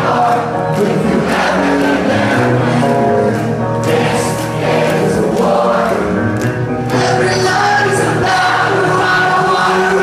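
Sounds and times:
crowd singing along: 0.0s - 10.0s
rock band playing live: 0.0s - 10.0s.

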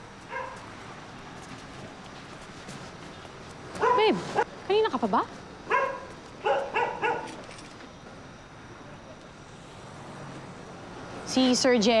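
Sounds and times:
dog barking: 0.3s - 0.7s, 3.8s - 4.2s, 5.7s - 7.4s.

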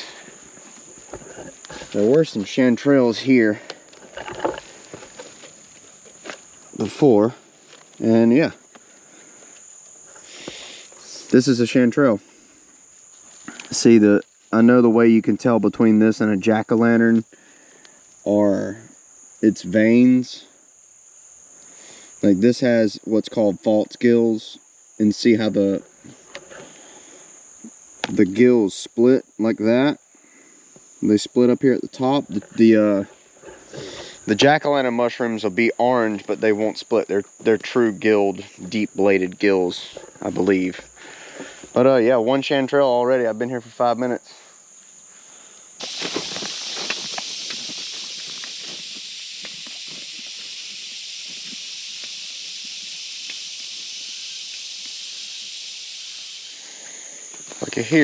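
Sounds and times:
crickets and insects chirping: 0.0s - 58.0s
footsteps crunching through dry leaves: 45.8s - 50.6s.

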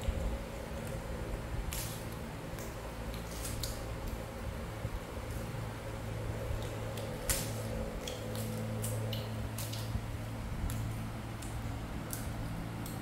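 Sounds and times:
seed pods snapping and crackling: 0.0s - 4.4s, 6.4s - 13.0s
steady low hum: 0.0s - 13.0s.

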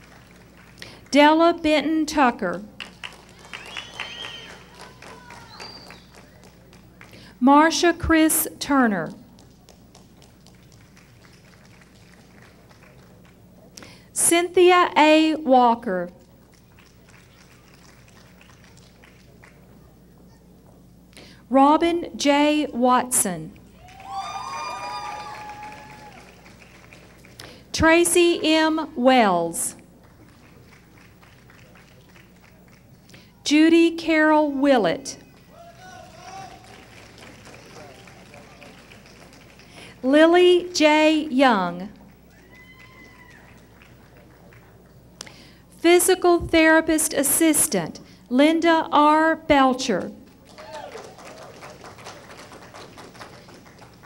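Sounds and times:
steady low hum: 0.0s - 54.0s
murmur of voices in a hall: 35.2s - 39.8s.

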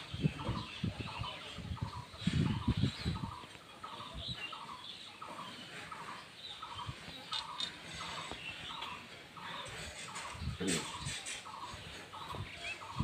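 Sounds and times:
cattle shed ambience: 0.0s - 13.0s.

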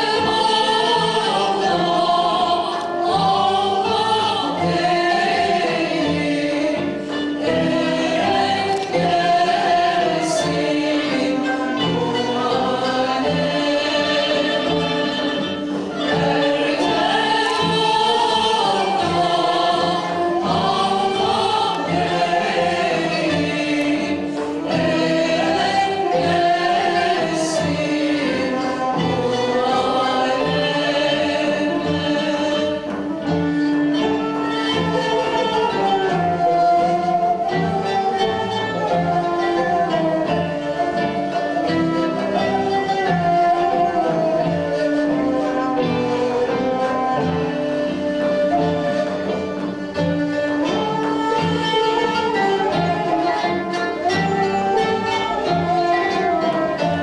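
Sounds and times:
group of voices singing: 0.0s - 57.0s
small ensemble of string and flute: 0.0s - 57.0s.

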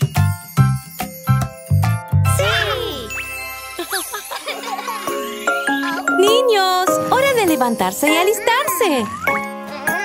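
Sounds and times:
tinkling chime notes: 0.0s - 9.7s
children's cartoon music: 0.0s - 10.0s.

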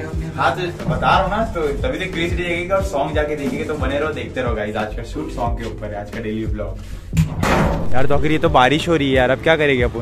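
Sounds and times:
metal gate slamming: 7.2s - 8.4s.

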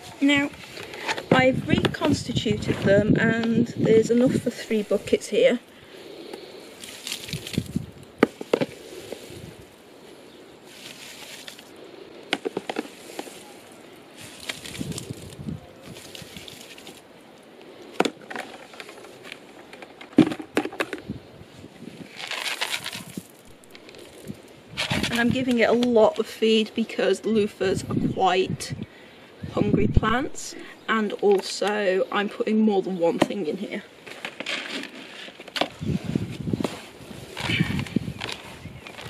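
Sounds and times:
pellets rattling: 22.1s - 25.2s.

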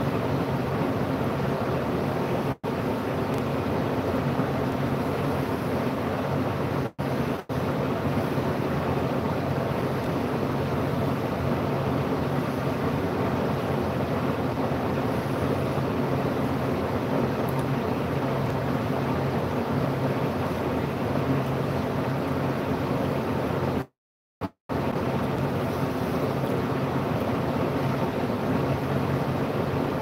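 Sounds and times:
machine droning hum: 0.0s - 30.0s.

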